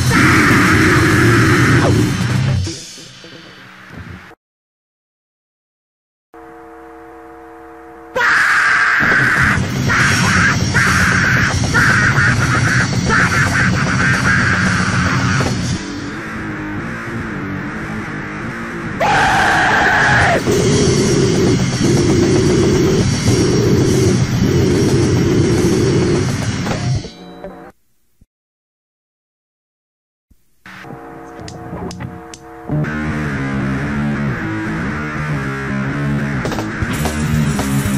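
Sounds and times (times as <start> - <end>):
punk band with distorted guitar: 0.0 - 4.3, 8.1 - 27.7, 30.8 - 37.9.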